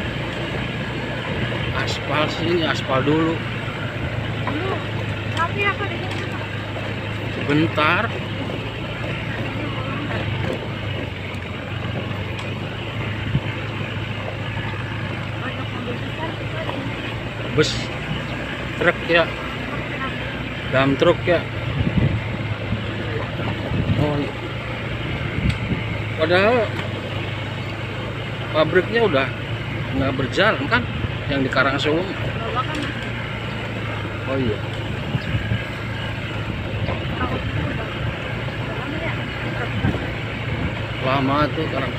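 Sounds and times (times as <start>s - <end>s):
motorcycle engine running: 0.0s - 41.9s
wind and road noise: 0.0s - 41.9s.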